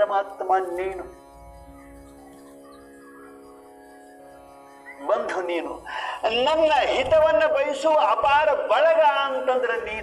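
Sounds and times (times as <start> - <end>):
instrumental drone chord: 0.0 - 10.0.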